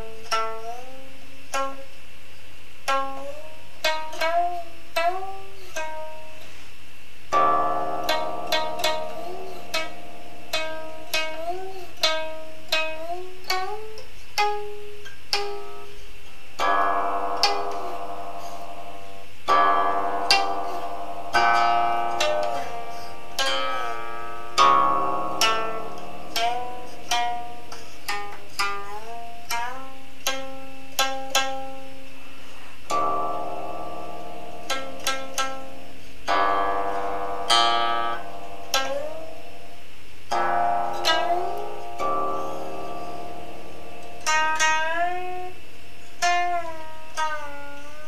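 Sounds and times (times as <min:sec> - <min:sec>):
zither being plucked: 0:00.0 - 0:01.9, 0:02.8 - 0:06.6, 0:07.3 - 0:48.0.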